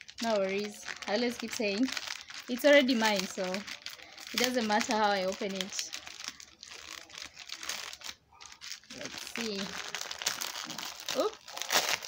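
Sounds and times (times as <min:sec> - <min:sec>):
paper wrapping tearing and crumpling: 0:00.0 - 0:12.0.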